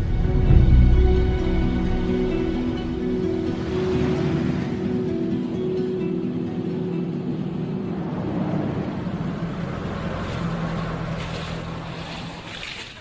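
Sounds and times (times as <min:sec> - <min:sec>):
truck driving past: 0:00.0 - 0:12.7.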